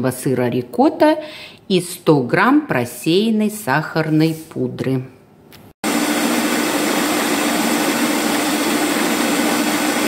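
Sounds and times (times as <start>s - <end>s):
stand mixer whirring: 5.9s - 10.0s.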